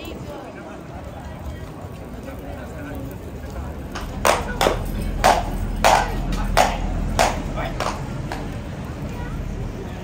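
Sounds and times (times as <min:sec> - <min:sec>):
horse hooves on stone floor: 0:01.6 - 0:08.8.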